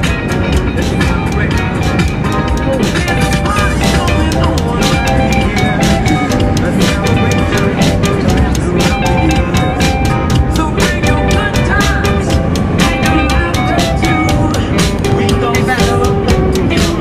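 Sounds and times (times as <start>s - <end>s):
car driving rumble: 0.0s - 17.0s
music with steady drum beat: 0.0s - 17.0s.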